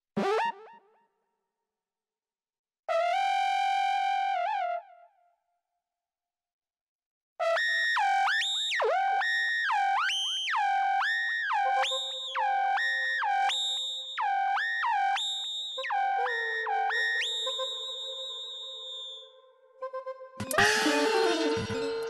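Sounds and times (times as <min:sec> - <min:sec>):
synthesizer tone swooping: 0:20.4 - 0:22.0.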